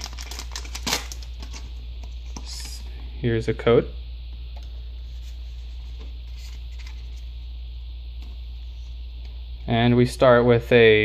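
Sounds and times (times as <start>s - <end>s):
foil pack rustling: 0.0s - 1.7s.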